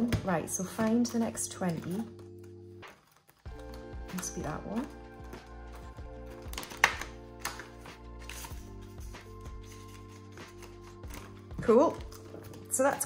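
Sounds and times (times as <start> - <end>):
banknotes and envelopes rustling: 0.0 - 13.0
music of sustained chords: 3.5 - 12.7.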